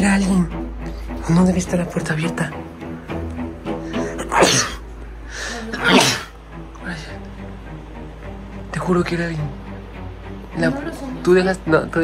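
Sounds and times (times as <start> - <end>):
background music with held notes: 0.0 - 12.0.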